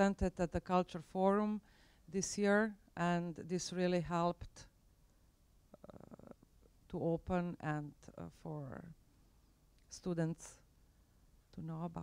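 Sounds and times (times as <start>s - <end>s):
woman speaking into microphone: 0.0s - 1.6s, 2.2s - 4.6s, 7.0s - 8.9s, 9.9s - 10.6s, 11.6s - 12.0s.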